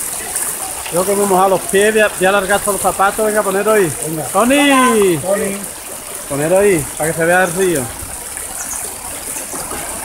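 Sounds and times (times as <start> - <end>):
river water rushing over stones: 0.0 - 10.0.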